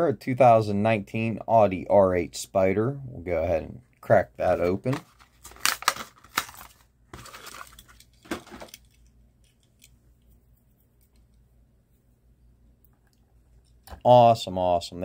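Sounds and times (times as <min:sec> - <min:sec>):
blister pack tearing and crinkling: 0:04.9 - 0:09.0.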